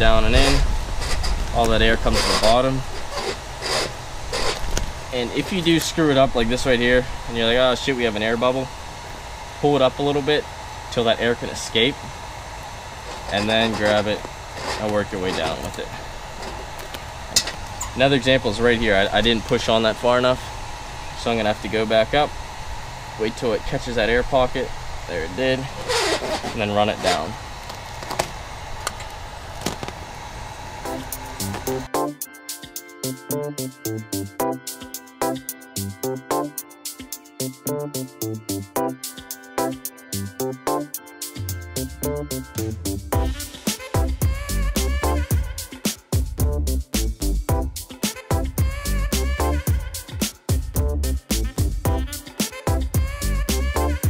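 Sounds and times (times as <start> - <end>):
steady low hum: 0.0 - 54.0
hands rustling vinyl film: 0.4 - 5.0, 13.0 - 17.7, 25.8 - 30.0
vinyl film crinkling: 25.8 - 30.0
background music with steady beat: 30.9 - 54.0.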